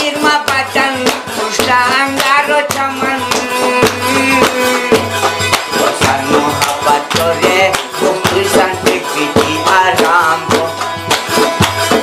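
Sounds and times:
man singing: 0:00.0 - 0:11.1
frame drum beat: 0:00.0 - 0:12.0.

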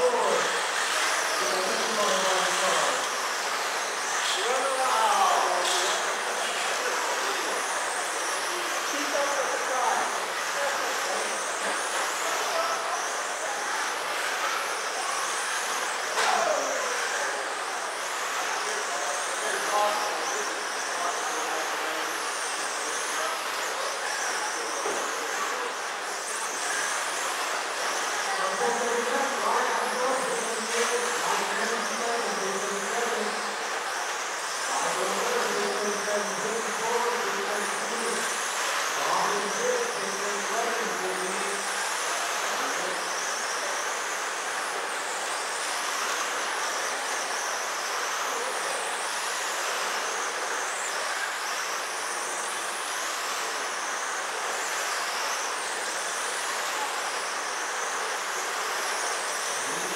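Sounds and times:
electric rc car motors whining: 0:00.0 - 0:59.9.

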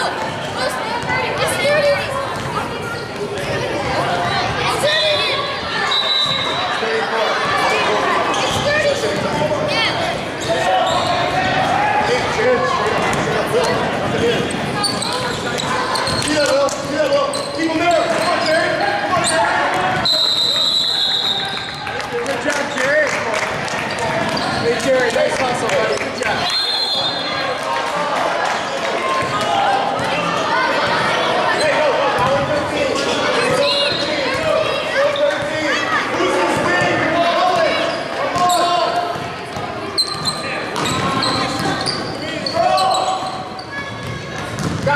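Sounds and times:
people talking and calling out: 0:00.0 - 0:44.9
referee's whistle: 0:05.8 - 0:06.6, 0:20.0 - 0:21.8, 0:26.4 - 0:27.3.

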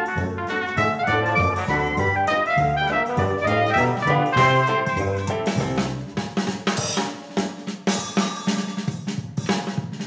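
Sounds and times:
music with drum-kit beat: 0:00.0 - 0:10.0.

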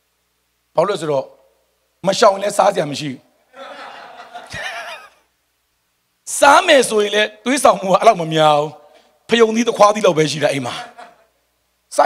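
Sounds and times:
soft wavering laughter: 0:03.5 - 0:05.3.

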